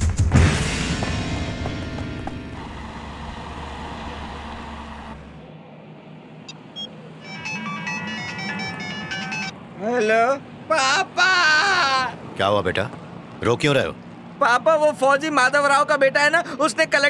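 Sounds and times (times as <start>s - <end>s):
background music: 0.0s - 3.1s
mobile phone ringtone: 6.8s - 9.6s
man crying loudly on phone: 10.7s - 12.2s.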